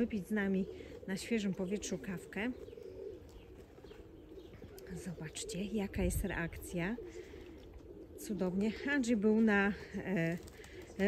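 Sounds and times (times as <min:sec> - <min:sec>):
bird cooing: 0:00.0 - 0:11.0.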